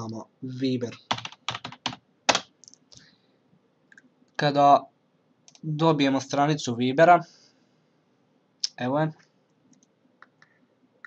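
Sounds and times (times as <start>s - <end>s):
person speaking: 0.0s - 2.4s
computer mouse clicks: 9.7s - 10.6s.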